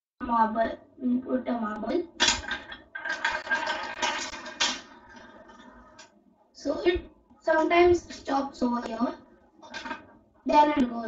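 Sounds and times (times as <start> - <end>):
marble rolling on plastic track: 2.2 - 6.1, 9.6 - 10.1.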